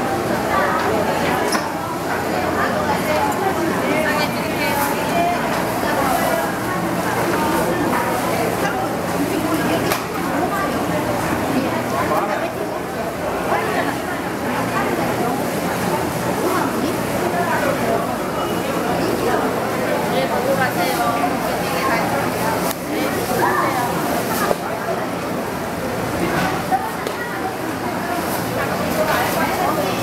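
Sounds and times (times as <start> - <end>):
chatter of voices: 0.0 - 30.0.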